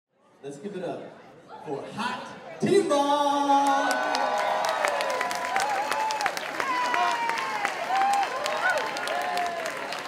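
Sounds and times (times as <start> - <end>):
audience cheering and whooping: 3.6 - 10.0
audience clapping: 3.6 - 10.0.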